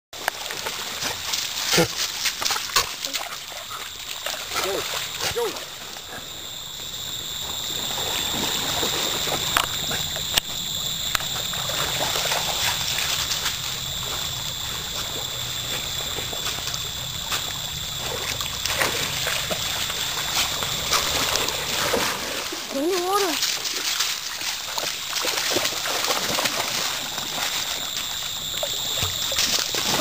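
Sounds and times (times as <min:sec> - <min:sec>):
water flowing and splashing: 0:00.1 - 0:30.0.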